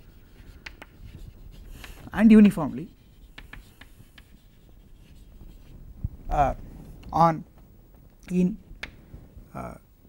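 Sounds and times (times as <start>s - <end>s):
chalk writing on chalkboard: 0.0s - 5.8s.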